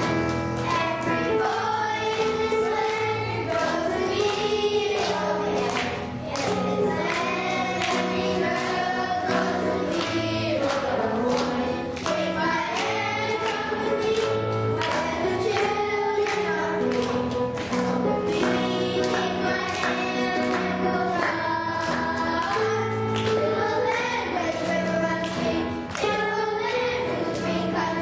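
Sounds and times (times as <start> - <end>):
children's choir singing: 0.0 - 28.0.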